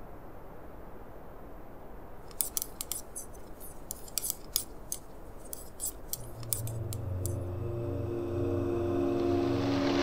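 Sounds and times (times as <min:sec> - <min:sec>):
faint low rumble: 0:06.2 - 0:10.0.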